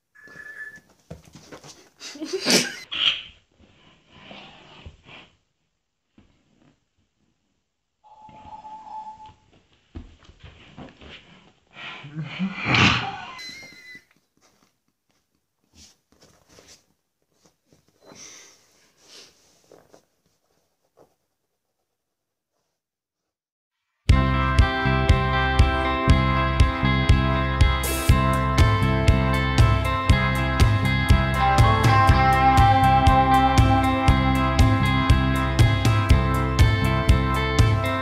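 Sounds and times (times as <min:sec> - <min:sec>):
stifled breathy laughter: 0:02.0 - 0:02.9, 0:11.8 - 0:13.4.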